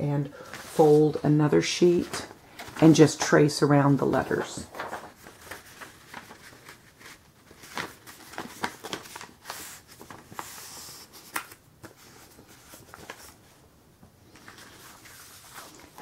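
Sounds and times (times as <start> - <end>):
paper crackling and rustling: 1.8 - 13.6, 14.2 - 16.0.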